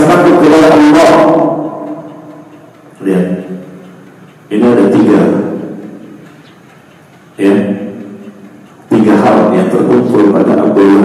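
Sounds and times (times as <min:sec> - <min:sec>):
man chanting with echo: 0:00.0 - 0:02.1, 0:08.9 - 0:11.0.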